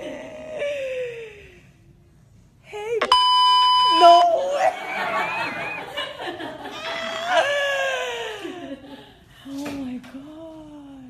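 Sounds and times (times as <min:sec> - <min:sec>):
high electronic beep: 0:03.0 - 0:04.5.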